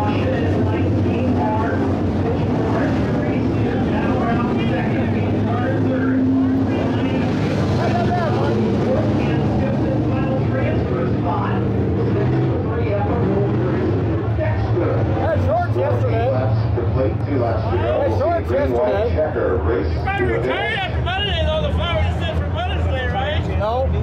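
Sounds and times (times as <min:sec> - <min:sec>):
people chattering: 0:00.0 - 0:24.0
race car engines droning: 0:00.0 - 0:24.0.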